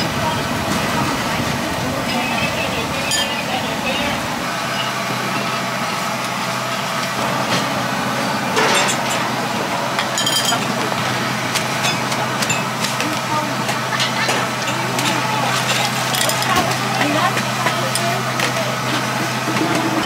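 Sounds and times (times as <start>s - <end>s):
bowls and utensils clinking: 10.0s - 10.8s, 11.8s - 18.6s.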